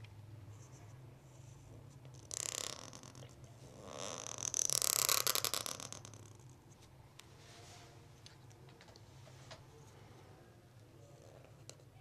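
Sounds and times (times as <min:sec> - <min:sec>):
faint low hum: 0:00.0 - 0:04.6, 0:05.8 - 0:12.0.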